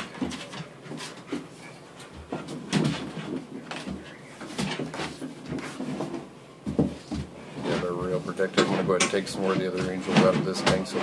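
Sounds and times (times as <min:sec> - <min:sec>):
dogs scuffling: 0:00.0 - 0:11.0
knocks and thuds: 0:02.2 - 0:07.4, 0:08.0 - 0:11.0.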